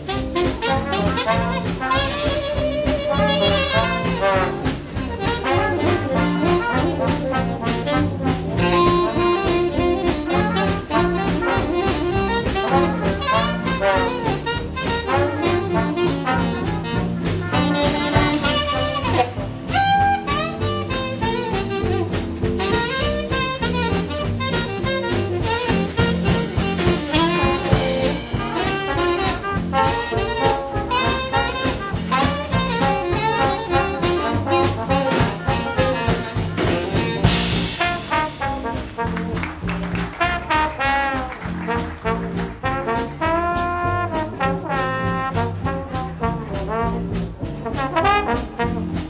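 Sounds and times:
jazz band playing: 0.0s - 49.0s.

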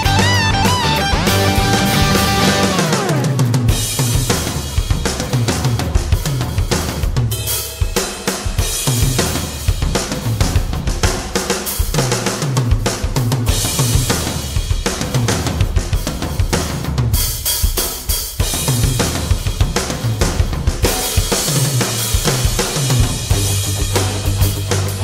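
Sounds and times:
rock drum kit playing: 0.0s - 25.0s.

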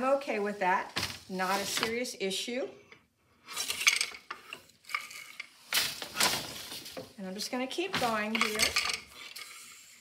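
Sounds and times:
wooden frame and heddles rattling: 3.7s - 9.3s
loom beater clatter: 7.9s - 9.0s.

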